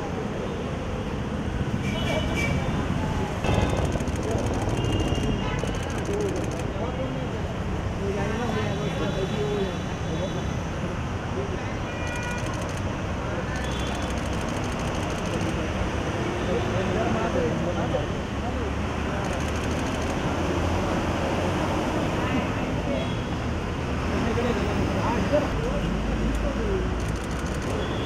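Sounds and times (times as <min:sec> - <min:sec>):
traffic noise: 0:00.0 - 0:28.0.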